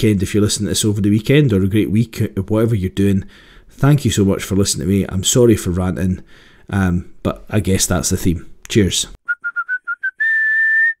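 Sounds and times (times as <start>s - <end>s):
person whistling a tune: 9.2s - 11.0s.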